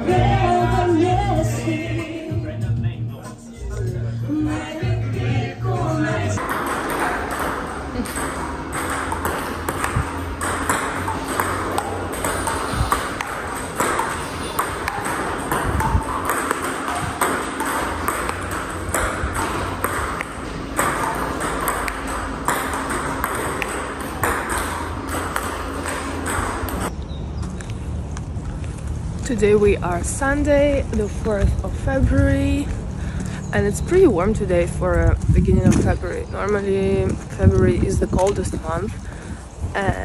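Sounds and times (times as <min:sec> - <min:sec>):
table tennis ball clicking: 0:06.4 - 0:26.9.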